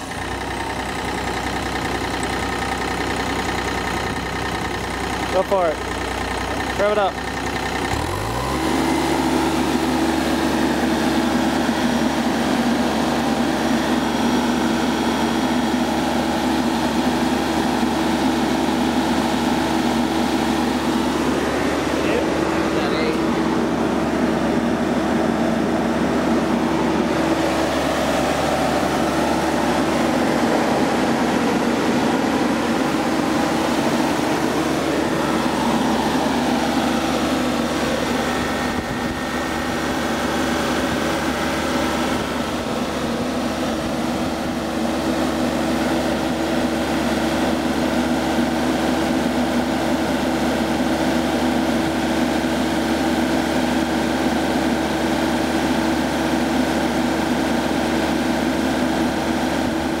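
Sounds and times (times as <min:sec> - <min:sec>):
diesel mower engine running: 0:00.0 - 1:00.0.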